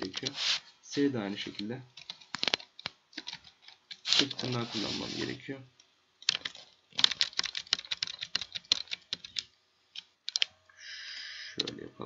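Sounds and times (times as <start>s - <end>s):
short steady hiss: 0.2s - 0.8s
computer keyboard typing: 6.2s - 9.5s, 10.3s - 10.5s.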